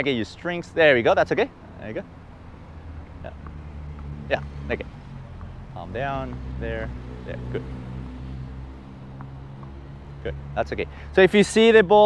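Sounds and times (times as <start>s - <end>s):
traffic engine hum: 0.0s - 12.0s.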